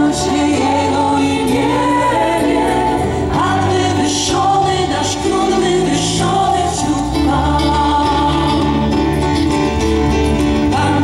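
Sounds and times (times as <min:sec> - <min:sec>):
voices singing praise song: 0:00.0 - 0:09.0, 0:10.7 - 0:11.0
band accompaniment: 0:00.0 - 0:11.0.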